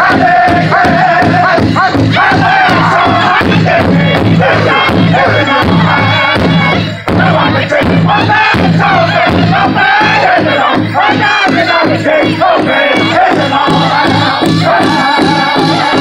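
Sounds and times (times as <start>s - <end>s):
group singing in high voices: 0.0s - 16.0s
large drum steady beat: 0.0s - 16.0s.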